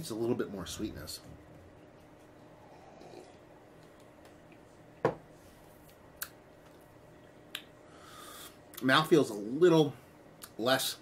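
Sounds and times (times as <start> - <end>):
mouth smacks: 6.1 - 6.8.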